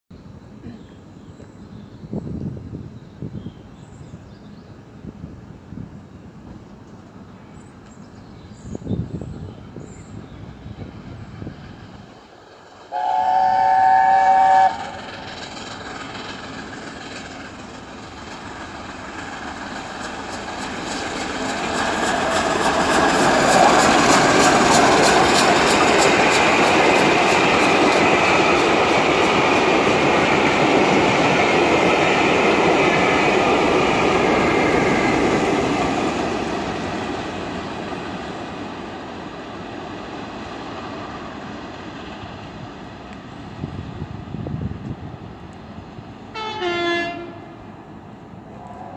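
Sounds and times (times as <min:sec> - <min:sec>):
steam exhaust rushing: 0:10.7 - 0:37.9
steam locomotive chime whistle: 0:12.9 - 0:15.0, 0:46.3 - 0:47.4.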